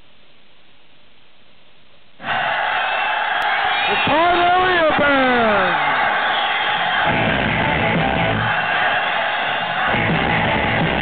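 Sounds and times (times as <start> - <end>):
crowd cheering and shouting: 2.2 - 11.0.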